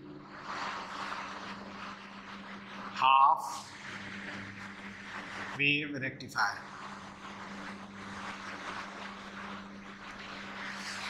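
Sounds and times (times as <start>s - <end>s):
constant low hum: 0.0s - 11.0s
marker scratching on whiteboard: 6.6s - 11.0s.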